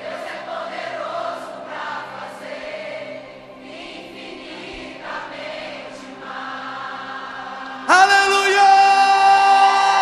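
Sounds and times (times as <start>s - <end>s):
choir holding long notes: 0.0s - 10.0s.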